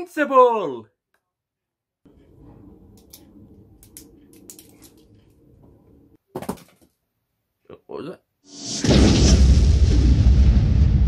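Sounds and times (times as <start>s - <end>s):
low rumble of handling noise: 2.1s - 6.2s.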